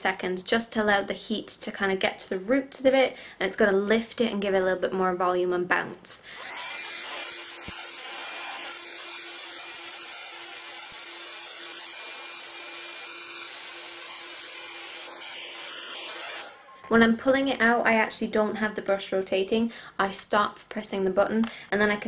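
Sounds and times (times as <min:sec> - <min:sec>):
hot air brush blowing: 0:06.4 - 0:16.6.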